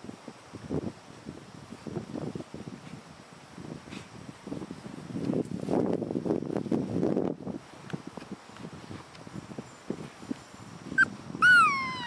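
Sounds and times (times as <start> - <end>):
puppy squeak: 11.0 - 12.0
puppy whining yelp: 11.0 - 12.0.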